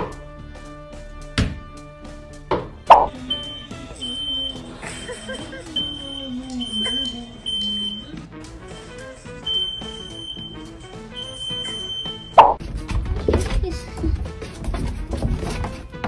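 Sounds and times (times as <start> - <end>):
background music: 0.0 - 16.0
smoke alarm beeping: 3.2 - 12.6.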